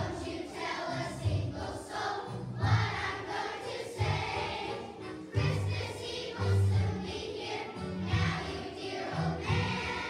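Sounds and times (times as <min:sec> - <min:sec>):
children's choir singing: 0:00.0 - 0:10.0
musical accompaniment with bass pulse: 0:05.3 - 0:07.1, 0:07.8 - 0:08.6.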